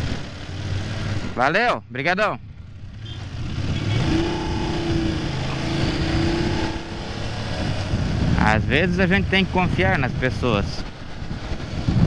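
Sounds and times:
wind and road noise: 0:00.0 - 0:12.0
motorcycle engine accelerating: 0:02.4 - 0:09.4.

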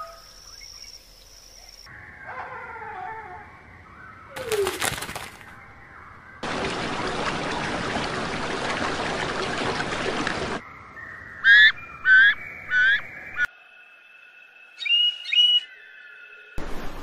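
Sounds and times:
water hissing and sloshing: 0:06.4 - 0:10.6
bird singing high tones: 0:10.7 - 0:13.5, 0:14.8 - 0:16.2
kingfisher whistled calls: 0:14.8 - 0:15.7.

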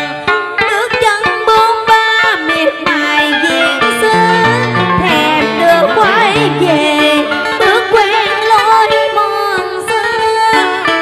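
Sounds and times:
instrumental accompaniment: 0:00.0 - 0:11.0
woman singing with vibrato: 0:00.6 - 0:11.0.

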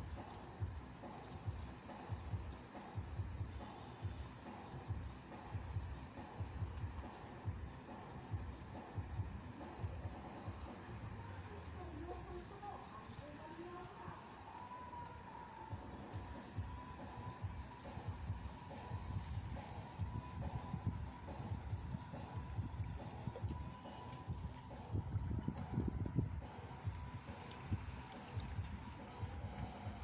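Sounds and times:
wind buffeting microphone: 0:15.8 - 0:30.0.

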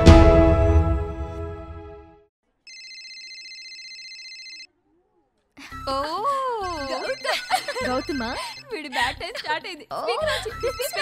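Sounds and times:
mobile phone ringtone trill: 0:02.7 - 0:04.7, 0:06.6 - 0:08.7, 0:10.4 - 0:11.0
music jingle: 0:05.7 - 0:09.2, 0:10.2 - 0:11.0.

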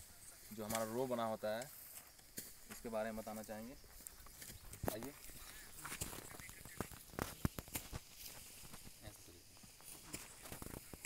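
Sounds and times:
footsteps on loose soil: 0:00.0 - 0:11.0.

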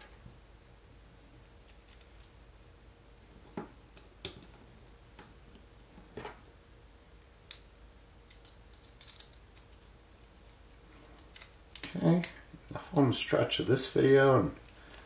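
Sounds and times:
small plastic parts clicking: 0:08.3 - 0:09.8.

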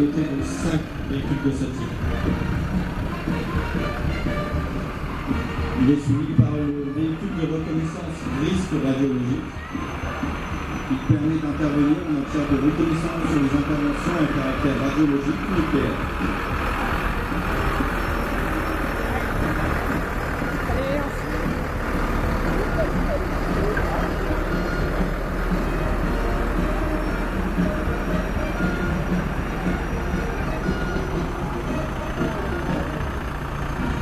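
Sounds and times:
crowd voices: 0:00.0 - 0:34.0
fire truck diesel engine passing: 0:00.0 - 0:34.0.

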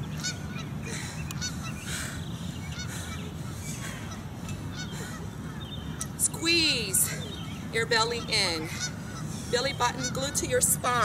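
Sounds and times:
birds calling: 0:00.0 - 0:11.0
steady low hum: 0:00.0 - 0:11.0.

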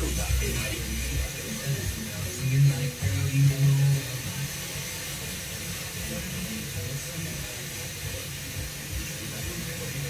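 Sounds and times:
plucked guitar-like notes on radio: 0:00.0 - 0:06.3
radio static hiss: 0:00.0 - 0:10.0.

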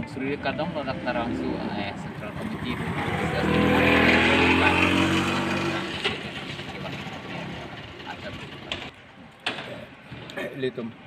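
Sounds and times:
vehicle passing by: 0:00.4 - 0:08.9.

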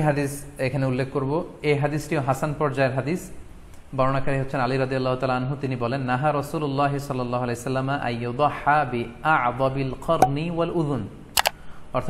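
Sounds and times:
sharp double click: 0:11.4 - 0:11.6.

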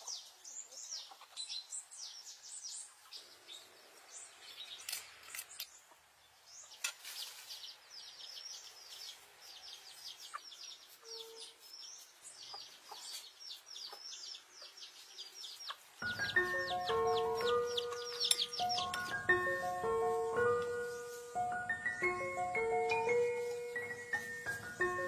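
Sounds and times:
birds chirping: 0:00.0 - 0:25.0
mallet percussion melody: 0:16.0 - 0:25.0.

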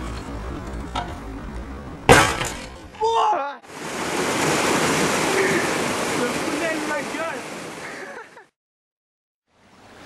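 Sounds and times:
rocky stream rushing: 0:03.7 - 0:08.3.

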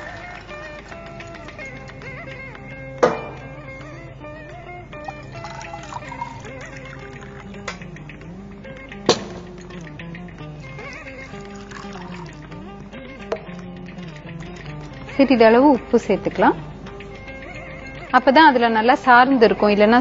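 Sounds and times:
background instrumental music: 0:00.0 - 0:20.0
water pouring into pot: 0:05.1 - 0:07.6, 0:10.7 - 0:12.6.

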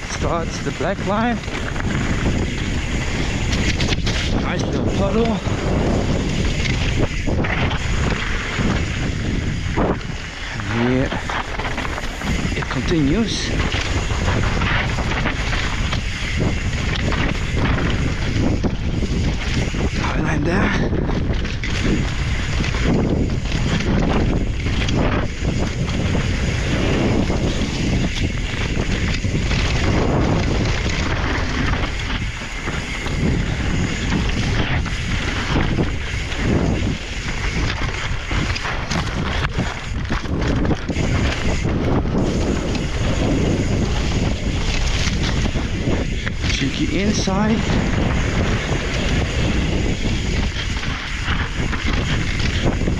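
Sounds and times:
bike chain and frame rattling: 0:00.0 - 0:52.9
tyres rolling over dirt: 0:00.0 - 0:52.9
wind rushing over microphone: 0:00.0 - 0:52.9.

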